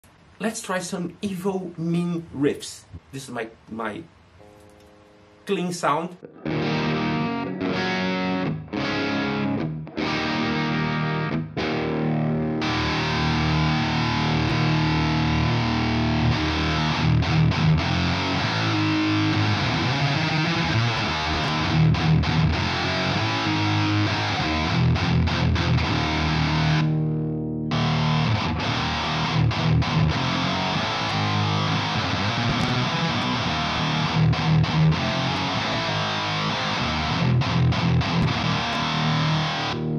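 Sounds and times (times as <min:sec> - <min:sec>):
clean electric guitar chords: 0:04.4 - 0:05.5, 0:06.2 - 0:39.9
distorted electric guitar riffs: 0:04.4 - 0:39.9.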